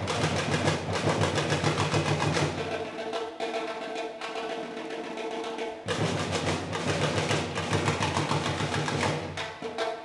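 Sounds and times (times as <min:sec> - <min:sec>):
street percussion drums: 0:00.0 - 0:10.0.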